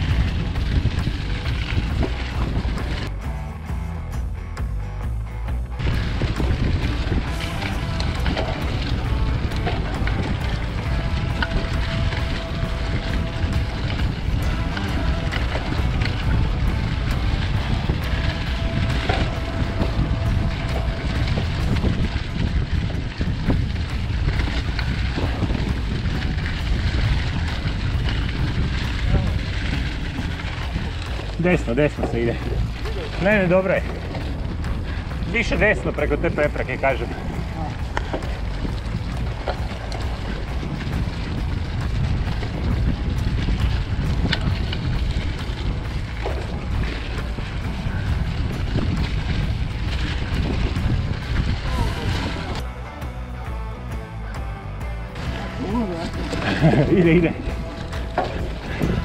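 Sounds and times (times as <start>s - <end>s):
wind buffeting microphone: 0.0s - 3.4s, 5.7s - 52.8s, 54.4s - 59.0s
bike rattling over bumps: 0.0s - 59.0s.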